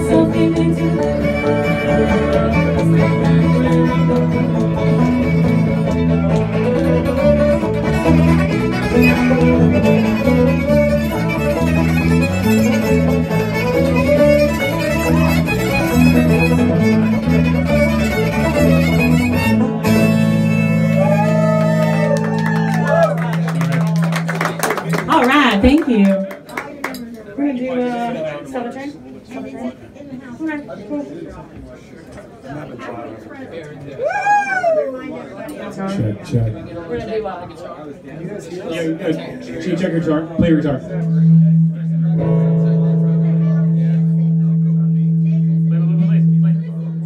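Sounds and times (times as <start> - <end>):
banjo: 0.0 - 21.2
acoustic guitar: 0.0 - 21.8
fiddle: 0.0 - 23.5
electric bass: 0.0 - 24.4, 40.4 - 47.0.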